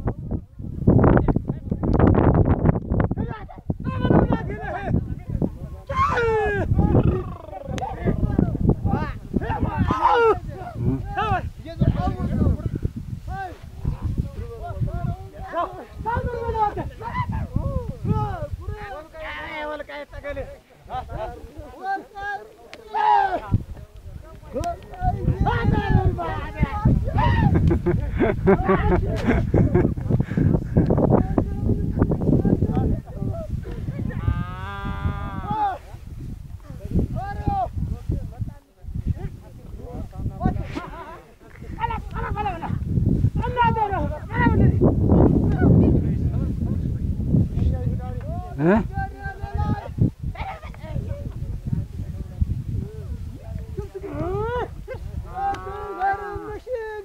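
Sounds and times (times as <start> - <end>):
men calling out: 3.2 - 36.1, 39.2 - 46.7, 48.2 - 51.6, 53.0 - 57.0.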